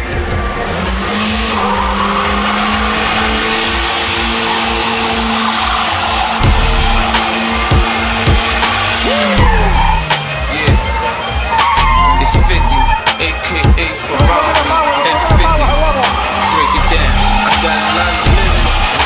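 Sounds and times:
truck engine high pitch: 0.0 - 19.0
tyres skidding and squealing: 0.0 - 19.0.

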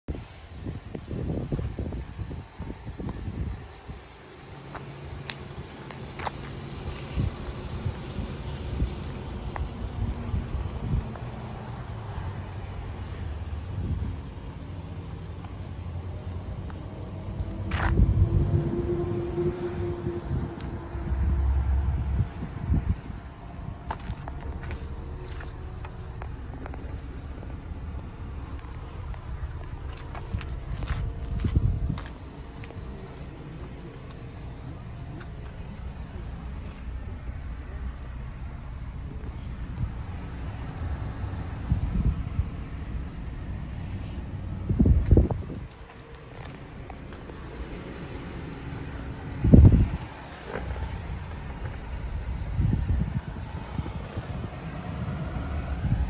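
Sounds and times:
wind buffeting microphone: 0.1 - 37.5, 39.0 - 56.0.

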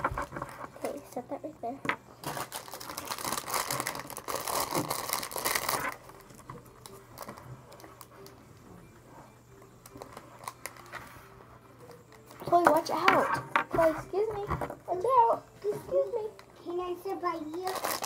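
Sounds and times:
plastic packaging crinkling: 2.2 - 8.1, 9.9 - 10.9, 17.4 - 18.0.

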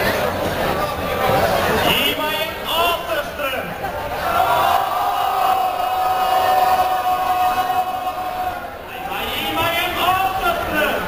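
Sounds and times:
noisy hall: 0.0 - 11.0.

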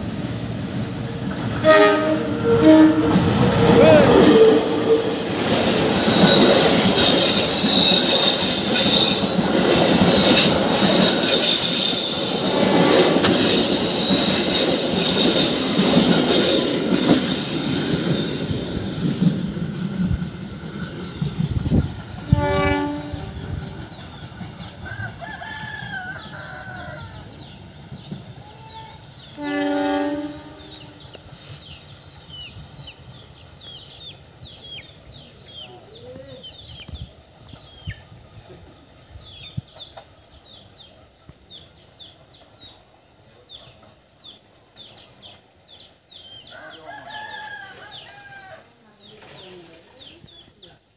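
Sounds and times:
train wheels rumbling and clattering: 0.0 - 46.5
train horn blasts: 1.6 - 5.2, 22.3 - 23.4, 29.3 - 31.0
rooster crowing: 24.8 - 27.5, 46.4 - 48.7.

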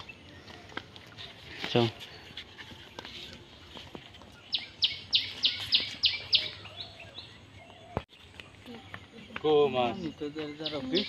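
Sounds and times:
bird calling: 4.2 - 11.0.

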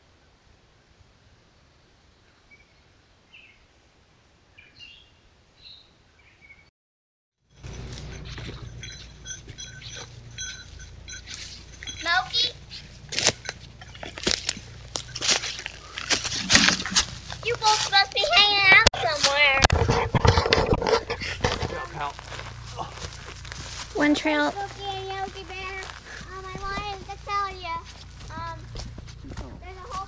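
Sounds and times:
footsteps rustling through brush: 7.6 - 19.6, 21.0 - 30.0
child and adults talking: 17.5 - 19.6, 24.0 - 30.0
steady low microphone hum: 19.8 - 30.0.

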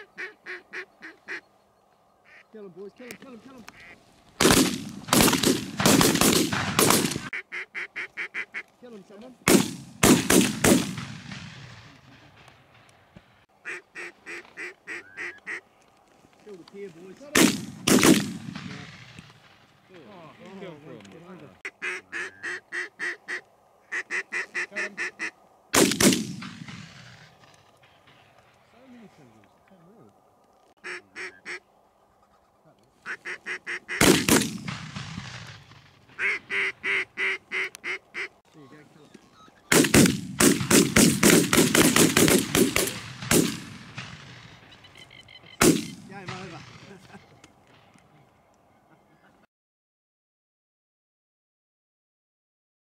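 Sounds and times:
ducks quacking: 0.0 - 1.5, 2.2 - 4.1, 7.2 - 9.0, 13.6 - 15.7, 21.2 - 25.5, 30.8 - 34.3, 36.1 - 39.8
shotgun blasts with ringing tail: 39.7 - 44.6.

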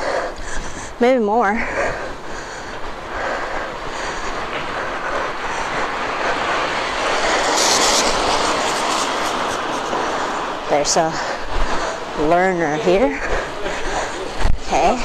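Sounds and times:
wind noise: 0.0 - 15.0
bicycle tyres on street: 1.8 - 12.4.

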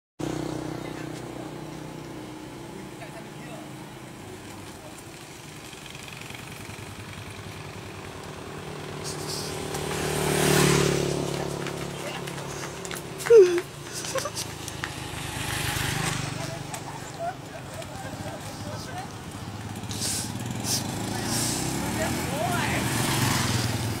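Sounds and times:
small motorbike engine running: 0.2 - 24.0.

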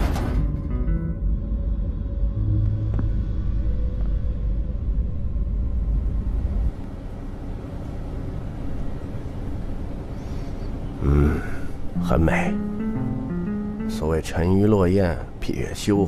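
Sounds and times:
low rumbling drone: 0.6 - 6.8
faint steady tones: 11.8 - 15.4.

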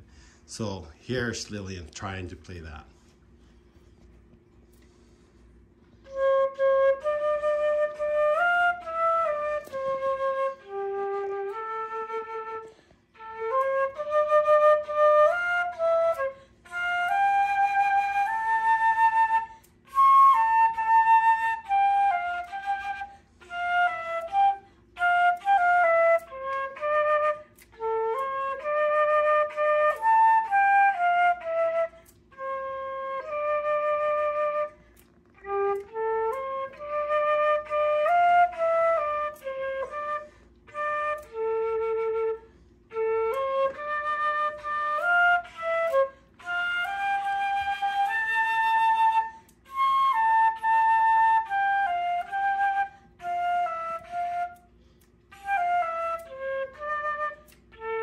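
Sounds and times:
flute playing slow melody: 2.5 - 58.0.

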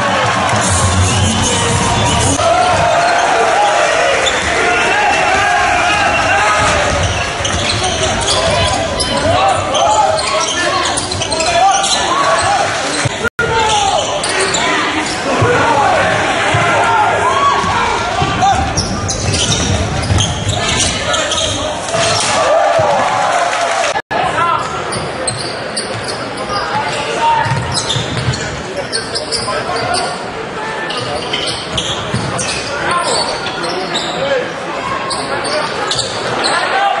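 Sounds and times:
crowd voices and shouting: 0.0 - 37.0
ball bouncing on court: 16.5 - 16.8.

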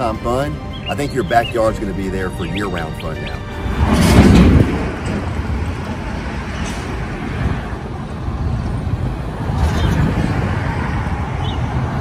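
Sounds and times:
road traffic rumble: 0.0 - 12.0
wind: 0.0 - 12.0
loud rush of noise: 3.2 - 12.0.

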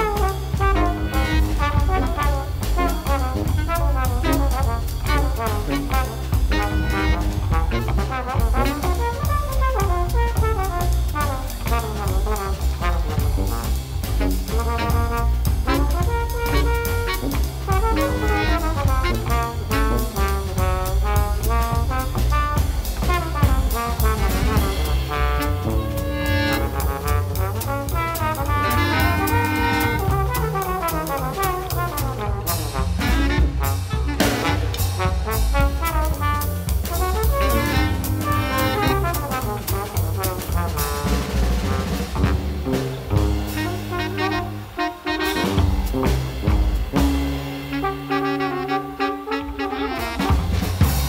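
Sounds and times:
low bass line: 0.0 - 48.5
live jazz band: 0.0 - 51.0
drum and cymbal strokes: 8.2 - 48.8, 50.2 - 51.0.

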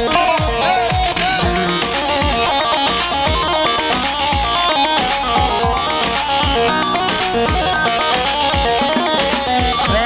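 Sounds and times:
plucked string dance melody: 0.0 - 10.0.

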